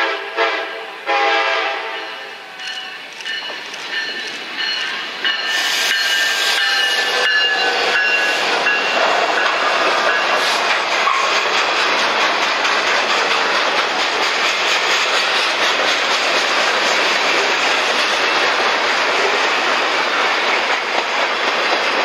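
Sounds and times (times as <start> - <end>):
locomotive air horn chord: 0.0 - 2.2
freight cars rolling on rails: 1.6 - 22.0.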